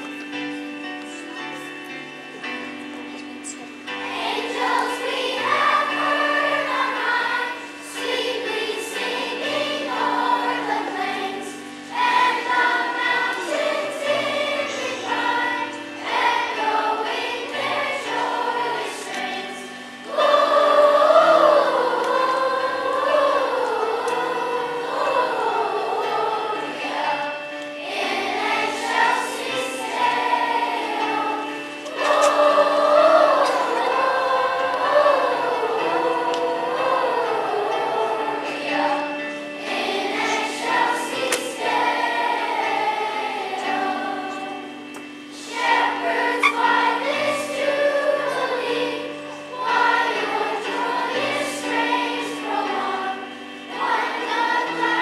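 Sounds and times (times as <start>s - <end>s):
children's choir singing: 0.0s - 55.0s
instrumental accompaniment: 0.0s - 55.0s.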